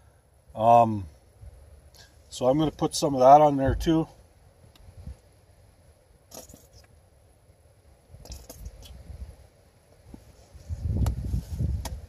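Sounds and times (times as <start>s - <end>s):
low bumps and thuds: 3.6s - 4.1s.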